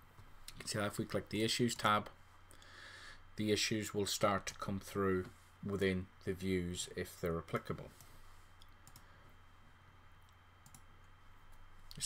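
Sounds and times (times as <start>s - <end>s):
computer mouse clicks: 8.0s - 9.1s, 10.2s - 10.9s.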